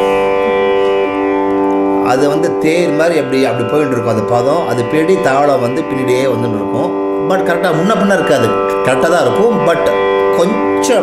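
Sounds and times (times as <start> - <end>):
tanpura drone: 0.0 - 11.0.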